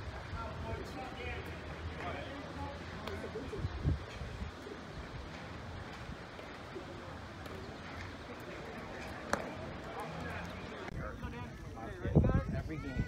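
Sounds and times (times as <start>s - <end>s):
distant voices: 0.0s - 13.0s.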